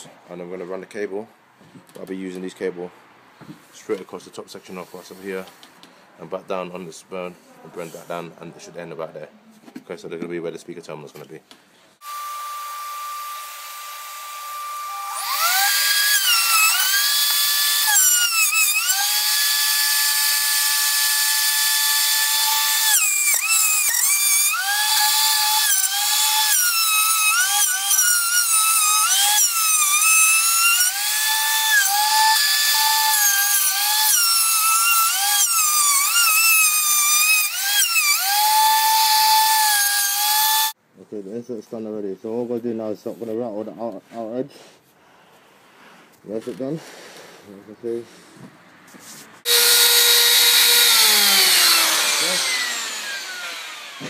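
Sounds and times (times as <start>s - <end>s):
router motor whine: 12.0s - 40.7s, 49.5s - 54.0s.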